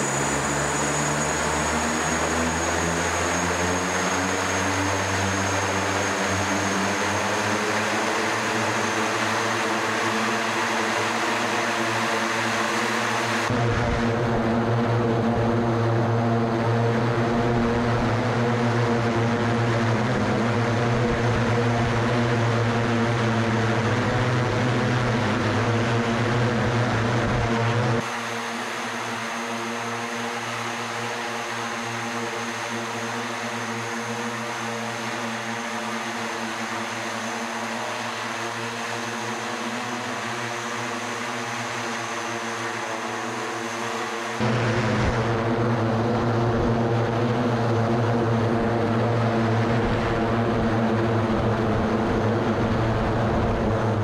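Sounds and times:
propeller hum: 0.0s - 54.0s.

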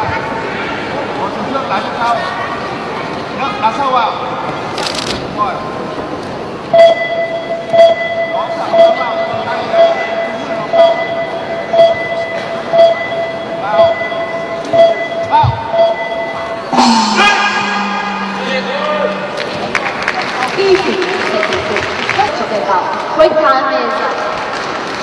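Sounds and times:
crowd chatter: 0.0s - 7.8s, 8.4s - 25.0s.

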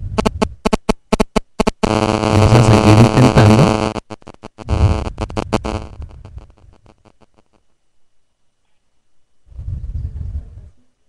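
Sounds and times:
distorted phone speaker clicks: 0.2s - 7.6s.

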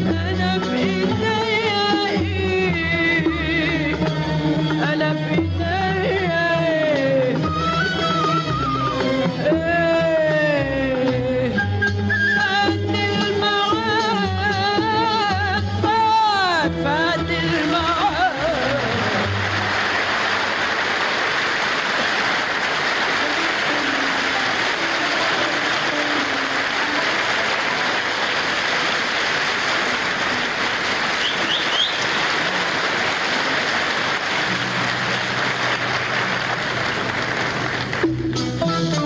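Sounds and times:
audience applauding: 17.6s - 38.7s.

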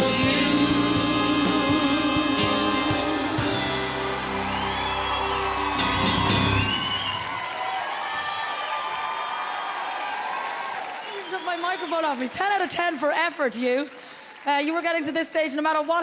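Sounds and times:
live pop band playing: 0.0s - 7.3s
audience applause and cheering: 0.0s - 13.2s.

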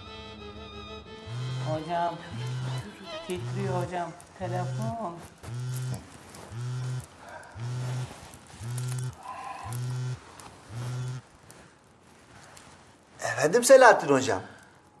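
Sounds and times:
mobile phone vibrating: 1.2s - 11.3s.

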